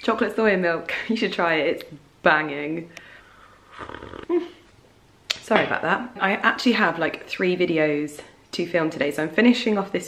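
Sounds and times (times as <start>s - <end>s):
person slurping coffee: 3.4s - 4.4s.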